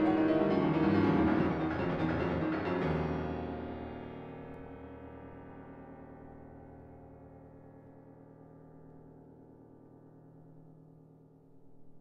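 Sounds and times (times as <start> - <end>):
solo piano chords: 0.0 - 7.7.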